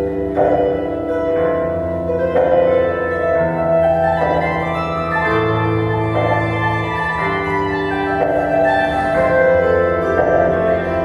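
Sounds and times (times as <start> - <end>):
plucked lute chords: 0.0 - 11.0.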